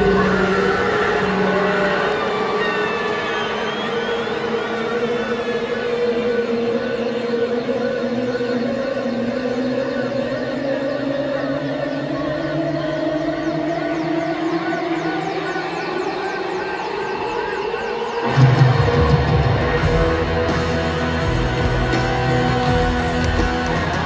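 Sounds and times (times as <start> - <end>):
crowd cheering and whistling: 0.0 - 24.0
rock band droning chord: 18.4 - 24.0.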